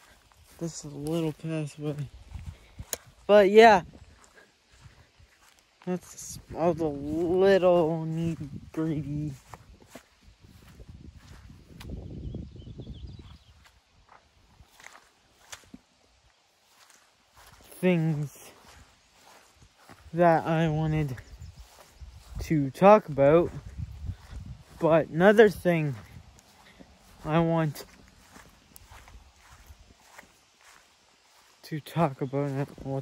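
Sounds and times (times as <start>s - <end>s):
footsteps on grass: 0.0s - 33.0s.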